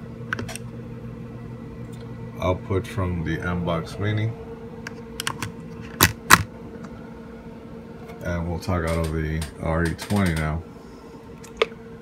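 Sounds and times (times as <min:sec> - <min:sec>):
faint hum: 0:00.0 - 0:12.0
plug clacks: 0:08.8 - 0:10.5.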